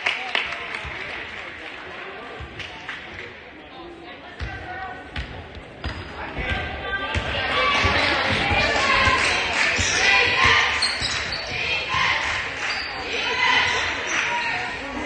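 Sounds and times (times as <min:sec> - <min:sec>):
voices in large gym: 0:00.0 - 0:15.0.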